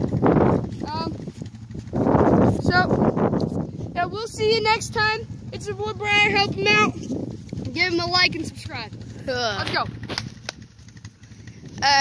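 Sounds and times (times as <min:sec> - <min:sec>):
quad engine idling: 0:00.0 - 0:12.0
sharp clicks: 0:09.6 - 0:11.8.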